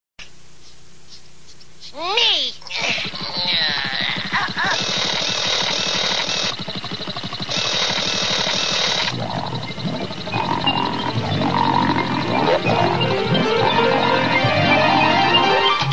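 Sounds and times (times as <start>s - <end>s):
harsh buzzing cartoon effects: 2.2s - 15.9s
cartoon music with keyboard notes: 9.1s - 15.9s.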